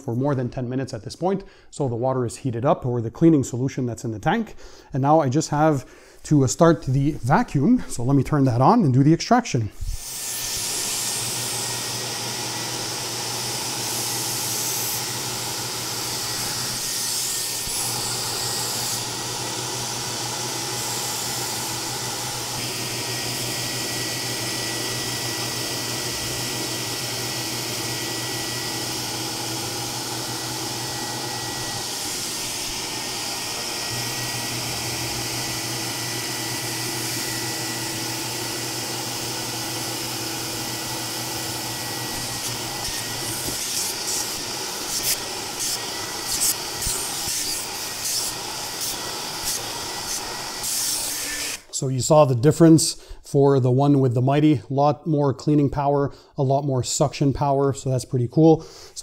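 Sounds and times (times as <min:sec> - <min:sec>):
carpet extractor vacuum motor: 0:10.0 - 0:51.8.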